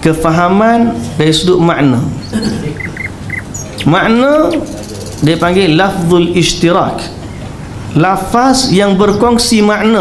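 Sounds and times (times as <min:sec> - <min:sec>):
small animal chirping: 0:02.2 - 0:05.4.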